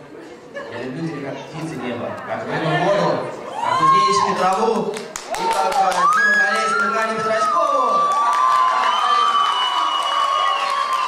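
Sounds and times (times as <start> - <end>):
crowd cheering: 3.5 - 11.0.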